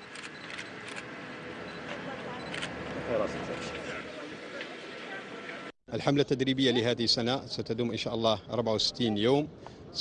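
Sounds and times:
camera shutters clicking: 0.0 - 1.1
outdoor background noise: 0.0 - 10.0.

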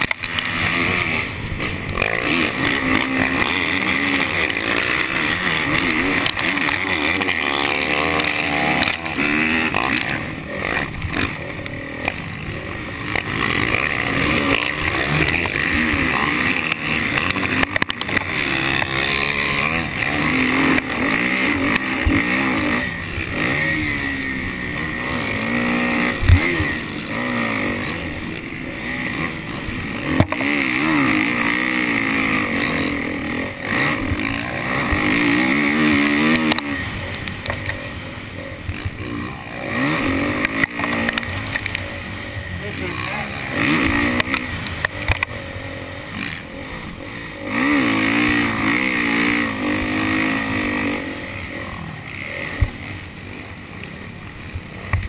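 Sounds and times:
motocross engine revving: 0.0 - 55.0.

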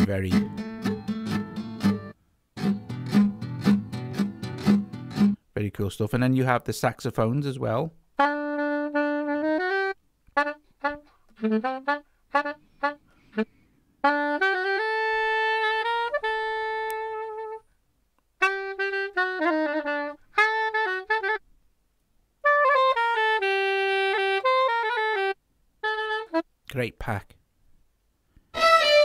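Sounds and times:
saxophone phrases: 0.0 - 2.2, 7.3 - 17.7, 18.4 - 21.4, 22.4 - 27.3, 28.6 - 29.0.

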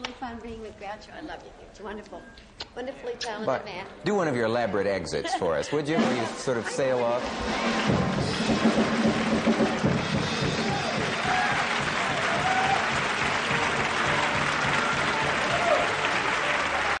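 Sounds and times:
band playing: 5.9 - 17.0
audience applauding: 6.5 - 17.0.

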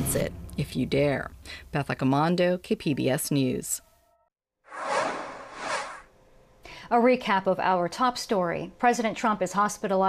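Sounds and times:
noisy whoosh: 4.7 - 6.1.

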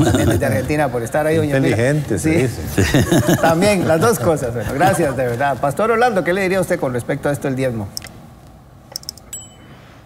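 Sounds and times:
high bell ding: 9.3 - 9.8.

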